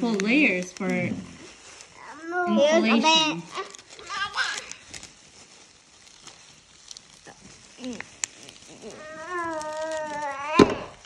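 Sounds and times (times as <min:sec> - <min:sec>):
sharp crackle: 0:00.0 - 0:11.0.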